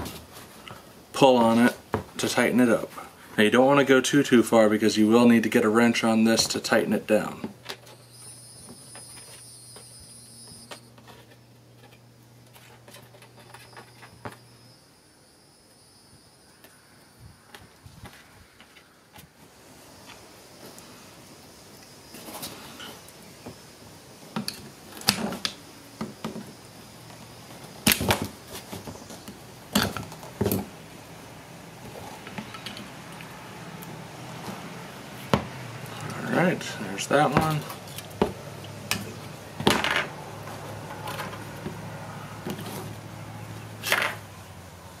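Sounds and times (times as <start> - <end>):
faint steady hum: 0.0 - 45.0.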